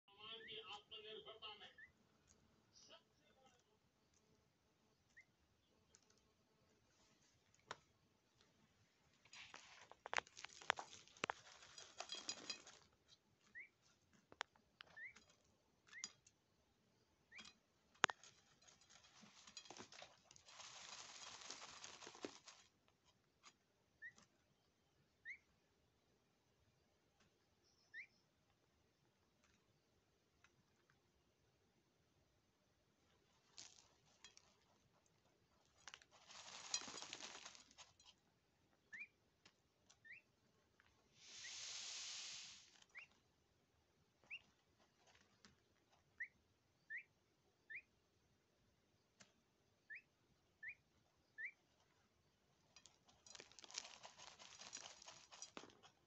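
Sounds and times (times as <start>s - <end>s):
bird chick peeping: 5.0s - 6.3s, 13.1s - 16.3s, 23.8s - 25.8s, 27.2s - 28.6s, 38.7s - 40.5s, 41.2s - 43.3s, 44.1s - 44.8s, 45.6s - 48.0s, 49.8s - 52.4s.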